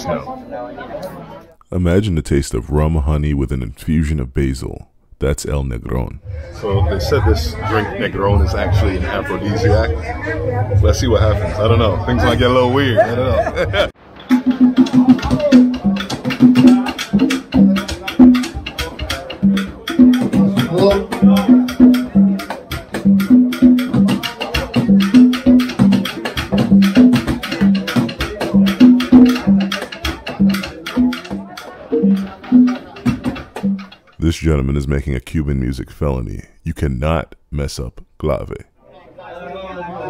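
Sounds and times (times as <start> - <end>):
conga drums: 6.3 - 34.4.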